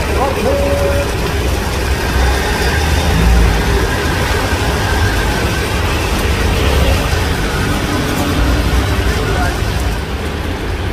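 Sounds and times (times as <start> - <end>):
auto rickshaw engines running: 0.0 - 10.9
heavy rain pouring: 0.0 - 10.9
steady low rumble: 1.2 - 10.9.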